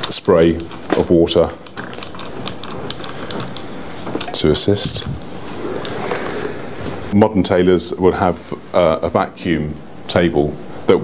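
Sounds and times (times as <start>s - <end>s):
steam iron hissing: 0.5s - 7.2s.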